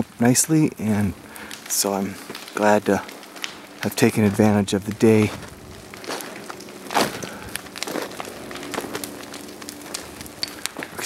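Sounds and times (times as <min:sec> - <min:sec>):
burning brush crackling and popping: 0:00.0 - 0:11.0.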